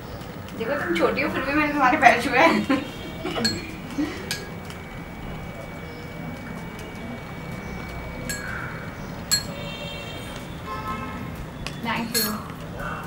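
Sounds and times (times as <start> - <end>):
metal spoon clinking glass bowl: 9.3 - 9.6, 12.0 - 12.5.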